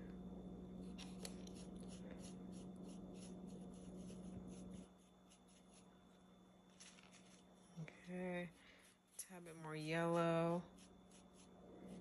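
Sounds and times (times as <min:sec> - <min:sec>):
paintbrush brushing on styrofoam: 0:01.0 - 0:06.0, 0:06.7 - 0:12.0.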